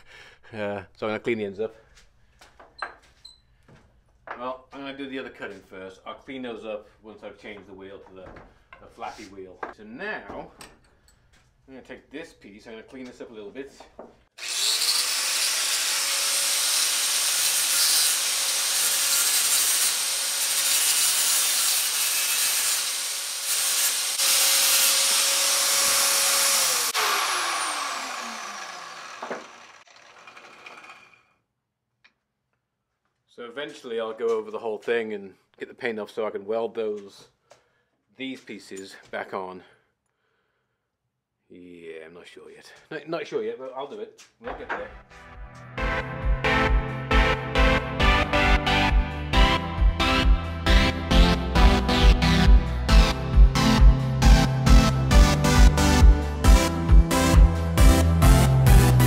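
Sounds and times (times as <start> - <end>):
angle grinder grinding steel: 14.4 - 31.3
grinder spinning down: 14.4 - 31.3.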